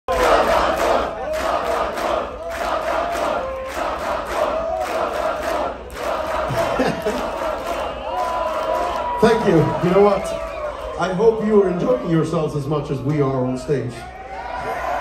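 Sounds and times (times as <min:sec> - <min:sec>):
crowd chanting in unison: 0:00.1 - 0:08.7.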